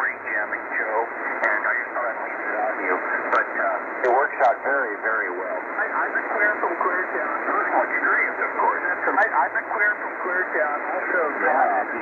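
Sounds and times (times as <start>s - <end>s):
thin radio speech: 0.0s - 12.0s.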